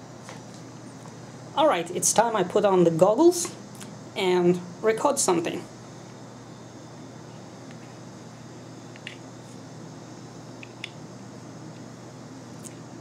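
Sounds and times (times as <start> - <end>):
air conditioner humming: 0.0 - 13.0.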